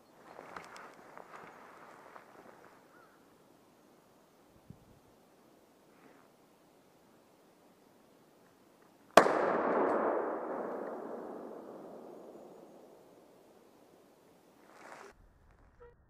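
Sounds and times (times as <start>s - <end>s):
rifle shot with rolling echo: 9.2s - 13.9s.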